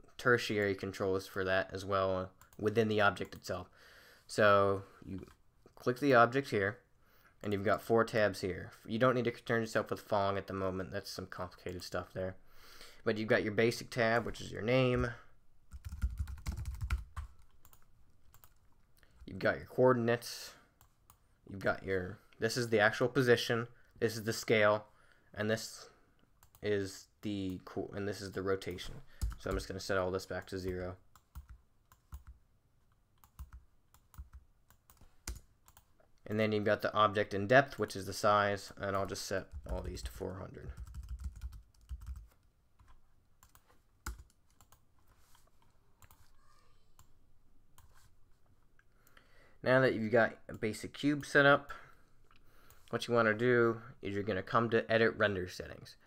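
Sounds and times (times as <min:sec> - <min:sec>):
typing on computer keyboard: 0:15.7 - 0:18.6, 0:40.8 - 0:44.8.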